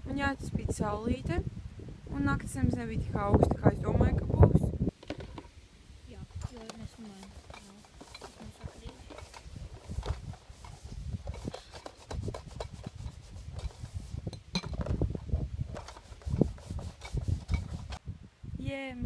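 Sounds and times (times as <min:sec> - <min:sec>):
person speaking: 0:06.1 - 0:09.5
dishes scrubbed by hand: 0:06.7 - 0:14.3, 0:15.7 - 0:18.0.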